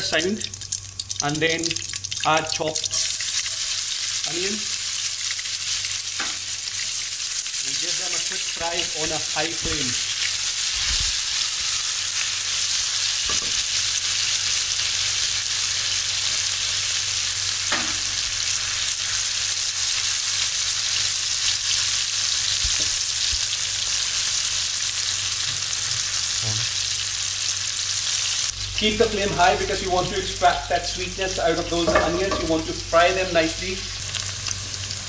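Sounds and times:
onions sizzling in hot oil: 0.0s - 35.0s.

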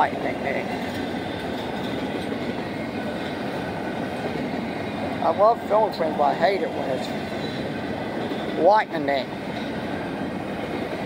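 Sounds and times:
train wheels rumbling on rail: 0.0s - 11.0s.

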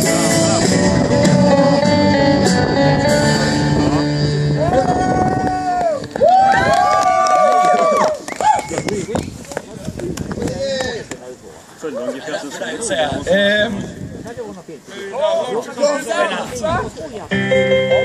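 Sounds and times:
long held notes with pitch glides: 0.0s - 6.6s, 17.3s - 18.0s
live band with guitar: 0.0s - 6.7s, 17.3s - 18.0s
people's voices: 7.2s - 18.0s.

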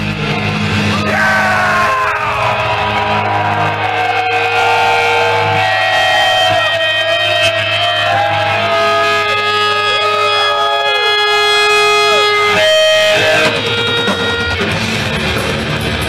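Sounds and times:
death metal band playing live: 0.0s - 16.0s.

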